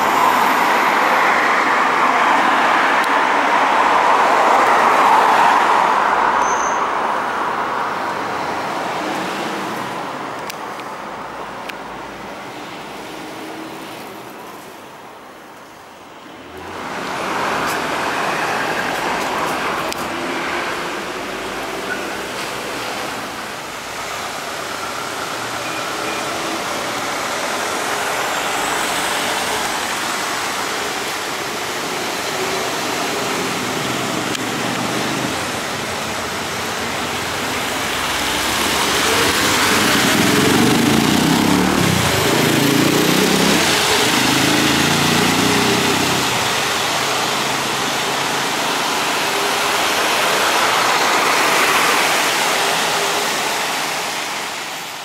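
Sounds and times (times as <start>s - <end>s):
trolleybus passing: 0.0s - 55.0s
vehicles driving past: 0.0s - 55.0s.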